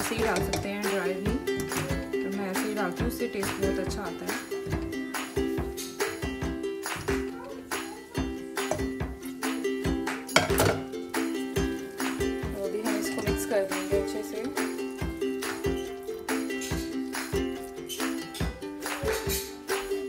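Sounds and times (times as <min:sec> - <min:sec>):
music with beat and plucked strings: 0:00.0 - 0:20.0.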